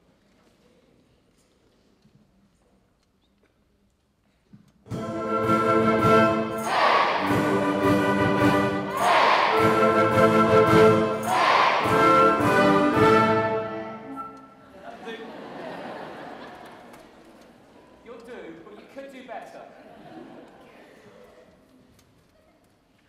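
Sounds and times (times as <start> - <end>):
wind band playing lively tune: 4.9 - 14.7
crowd noise: 5.4 - 18.2
audience shouting together: 6.5 - 7.6, 8.8 - 10.0, 11.1 - 12.4.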